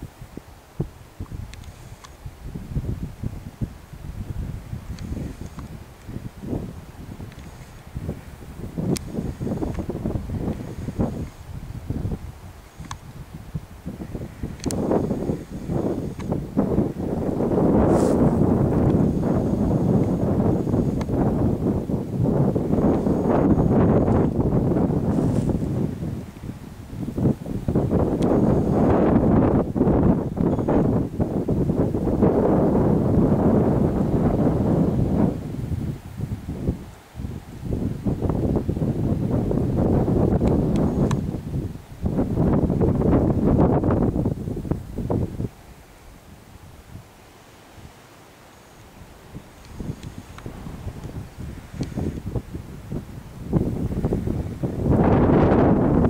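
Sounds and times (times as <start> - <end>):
wind buffeting microphone: 0.0 - 48.0, 48.6 - 56.0.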